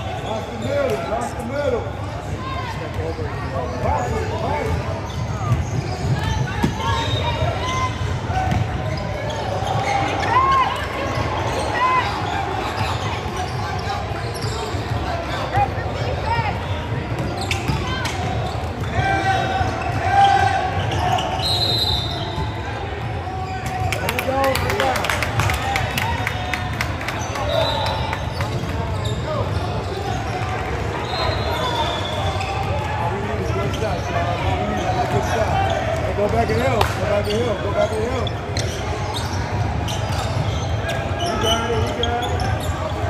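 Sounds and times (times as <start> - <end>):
sneaker squeaks: 0.0 - 24.5, 27.0 - 43.0.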